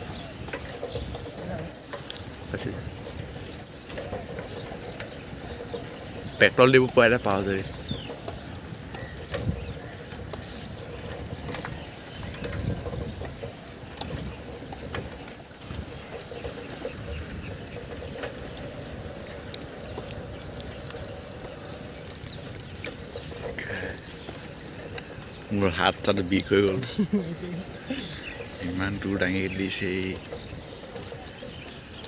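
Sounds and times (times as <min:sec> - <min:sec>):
road and wind rumble: 0:00.0 - 0:32.0
short high squeaks: 0:10.7 - 0:11.2, 0:15.3 - 0:17.7.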